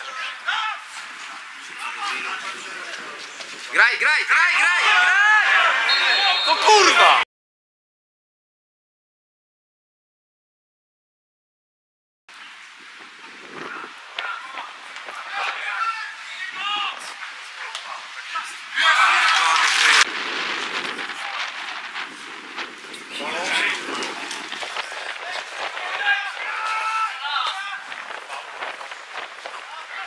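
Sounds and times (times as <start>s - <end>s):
men shouting: 4.0s - 7.2s, 14.2s - 20.1s, 25.2s - 28.8s
loud noisy burst: 19.1s - 22.7s.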